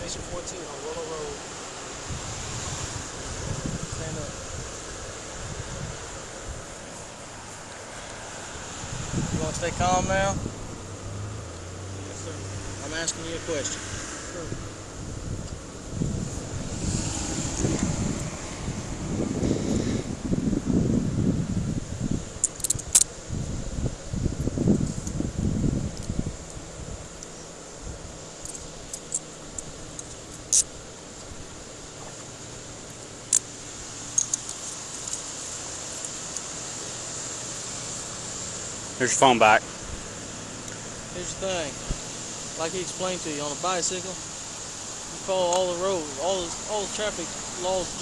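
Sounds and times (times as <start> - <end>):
car traffic passing: 0.0 - 48.0.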